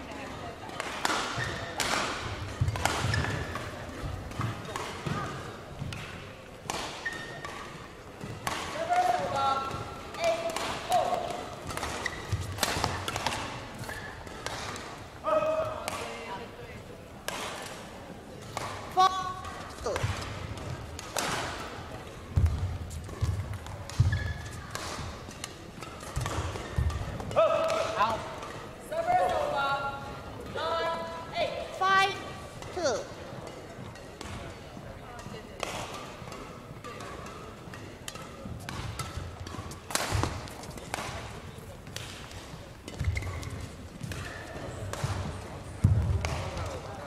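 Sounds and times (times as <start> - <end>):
racket striking shuttlecock: 0.7 - 15.0, 17.2 - 28.6, 35.2 - 46.8
shoes squeaking on court: 1.3 - 1.8, 2.5 - 5.6, 6.9 - 8.5, 11.0 - 14.5, 22.3 - 27.1, 36.8 - 46.7.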